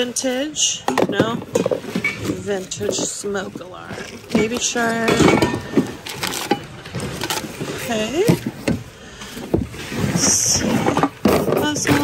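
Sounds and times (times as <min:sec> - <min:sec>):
packaging and boxes rustling: 0:00.0 - 0:12.0.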